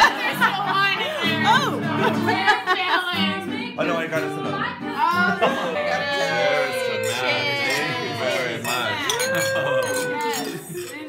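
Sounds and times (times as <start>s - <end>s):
quieter overlapping voices: 3.3s - 11.0s.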